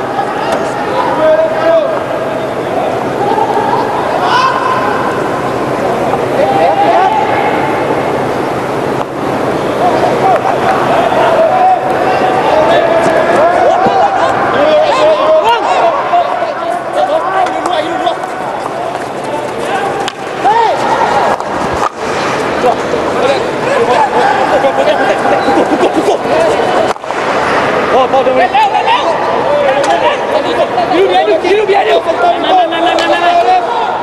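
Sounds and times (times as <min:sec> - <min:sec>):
crowd shouting and calling: 0:00.0 - 0:34.0.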